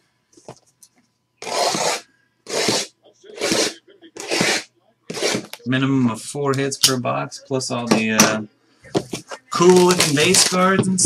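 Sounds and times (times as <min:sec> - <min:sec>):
plastic shrink-wrap ripping: 0:09.5 - 0:10.7.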